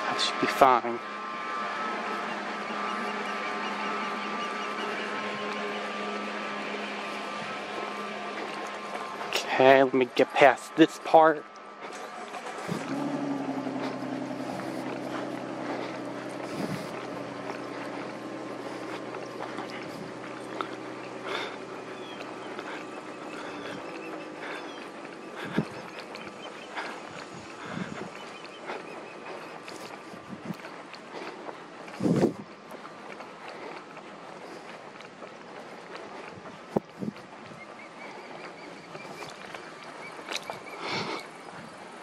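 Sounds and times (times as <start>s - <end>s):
steady engine hum: 0.0s - 42.0s.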